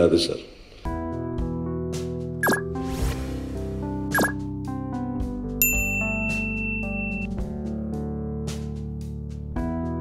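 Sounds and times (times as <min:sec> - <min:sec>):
background music: 0:00.8 - 0:10.0
notification bell chime: 0:05.6 - 0:07.4.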